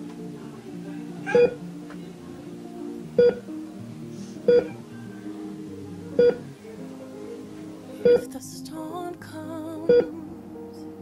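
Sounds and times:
soft background music: 0.0 - 11.0
patient monitor beeps: 1.2 - 1.7, 3.2 - 3.5, 4.5 - 5.2, 6.2 - 6.5, 8.0 - 8.2, 9.9 - 10.1.

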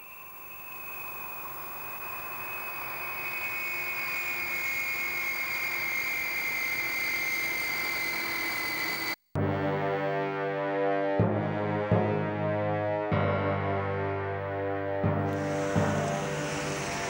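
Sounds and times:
jet engine whine: 0.0 - 9.2, 15.3 - 17.0
rushing noise: 0.0 - 9.2, 15.3 - 17.0.

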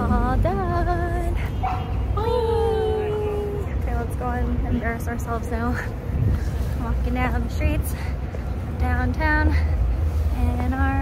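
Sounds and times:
woman making wavering vocal sounds: 2.2 - 3.8.

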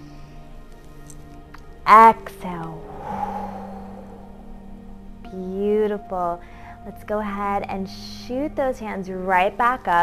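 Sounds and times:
soft background music: 0.0 - 10.0
woman exhaling: 2.8 - 5.0.

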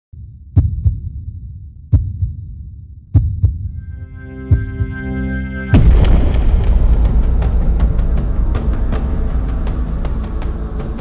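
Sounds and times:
heartbeat thumps: 0.2 - 3.8, 4.5 - 5.0
low drone: 3.8 - 11.0
sustained chord: 3.8 - 11.0.

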